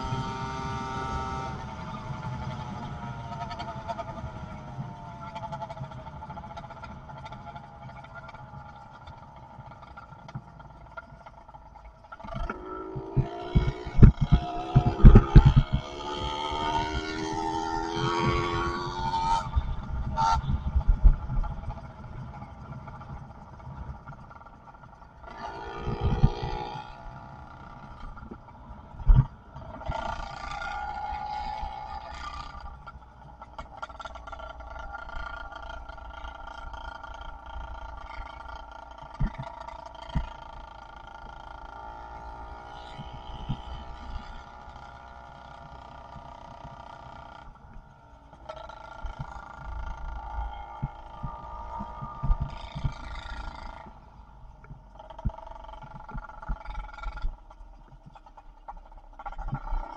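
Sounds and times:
two-stroke engine running: 0.0 - 59.9
wind rumbling over microphone: 11.7 - 40.5, 46.6 - 58.3
sharp thumps: 12.2 - 21.8.

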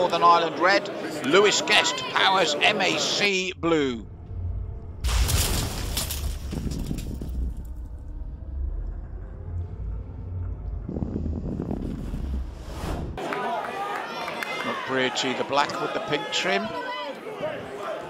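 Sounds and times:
deep bass rumble: 3.6 - 13.2
sudden crashing hit: 5.0 - 8.6.

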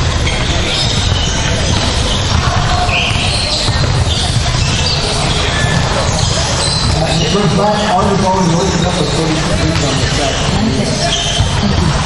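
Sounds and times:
indistinct voices: 0.0 - 12.0.

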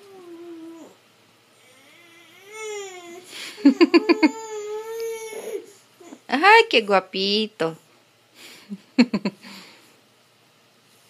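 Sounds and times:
baby whining cry: 0.0 - 1.0, 1.6 - 6.3.

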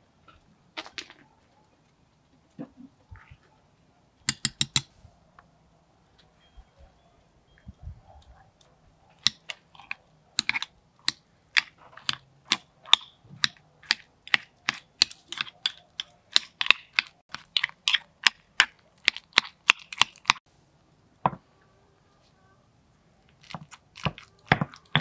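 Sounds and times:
metal spoon clicking on marble mortar: 4.3 - 4.9, 10.4 - 20.4.

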